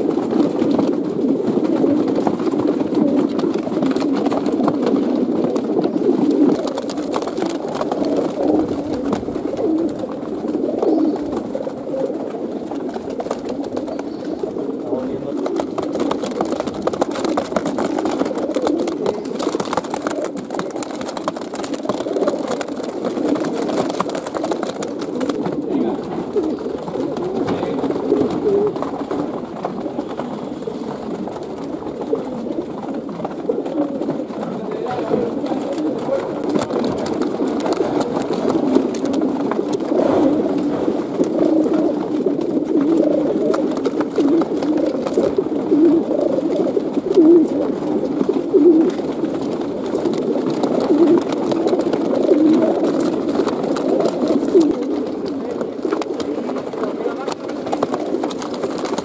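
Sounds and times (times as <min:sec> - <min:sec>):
pigeons cooing: 0:00.0 - 0:59.0.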